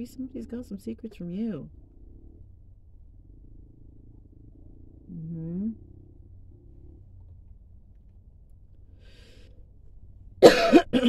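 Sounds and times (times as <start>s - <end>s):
low rumbling hum: 0.0s - 11.0s.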